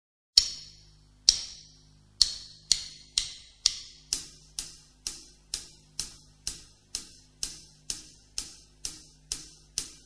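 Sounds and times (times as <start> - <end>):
count-in clicks: 0.4 - 10.0.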